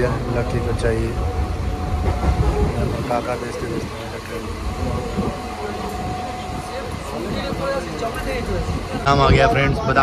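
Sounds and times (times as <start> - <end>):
thin steady whine: 0.0 - 10.0
train rumbling on rails: 0.0 - 10.0.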